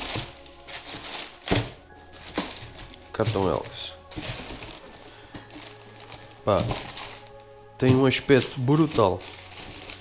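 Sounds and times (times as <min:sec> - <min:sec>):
faint background music: 0:00.0 - 0:10.0
tissue paper rustling: 0:00.0 - 0:10.0.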